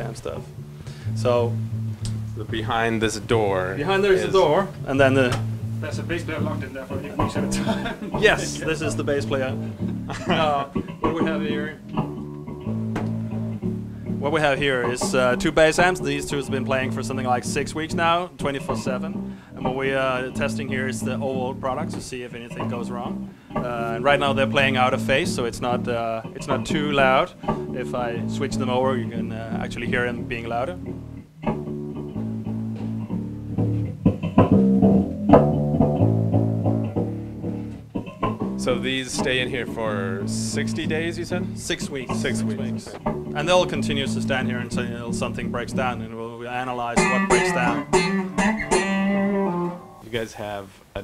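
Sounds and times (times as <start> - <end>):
bass amp playing music: 0.0 - 50.0.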